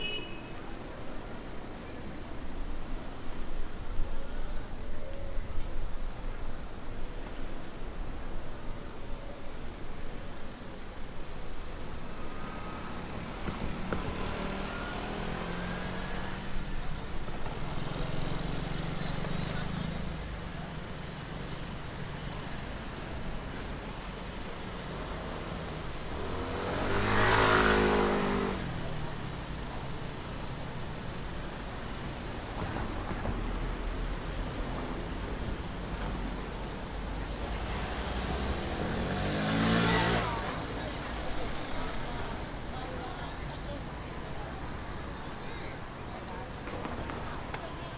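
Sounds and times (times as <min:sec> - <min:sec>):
city street traffic: 0:00.0 - 0:47.9
motor scooter passing: 0:26.1 - 0:29.1, 0:38.2 - 0:40.9
engine passing close: 0:38.0 - 0:40.9.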